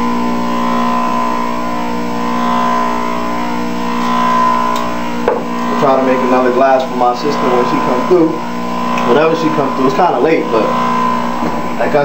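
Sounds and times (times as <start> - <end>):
electric motor humming: 0.0 - 12.0
click: 4.7 - 4.9.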